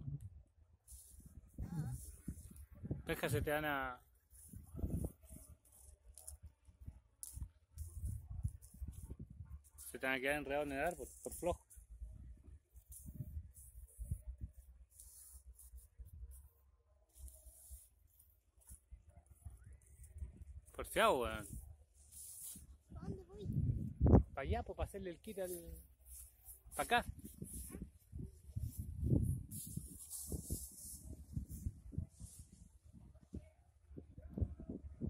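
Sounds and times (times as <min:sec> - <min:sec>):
wind rumble on microphone: 0:00.0 - 0:03.6, 0:04.4 - 0:05.6, 0:06.4 - 0:09.8, 0:11.8 - 0:14.8, 0:19.1 - 0:21.8, 0:22.5 - 0:24.8, 0:26.9 - 0:35.0
soft rustles: 0:25.2 - 0:32.9.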